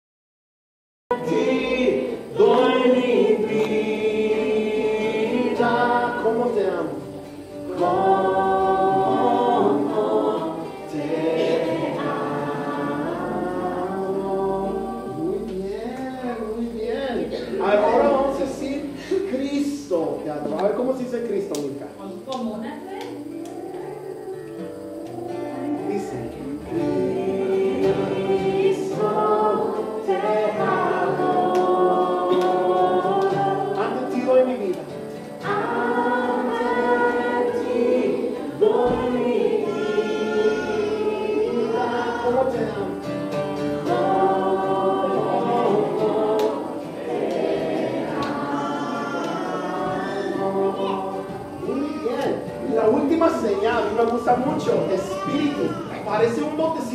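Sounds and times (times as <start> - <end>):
children and adults singing: 1.1 - 21.8, 22.8 - 56.9.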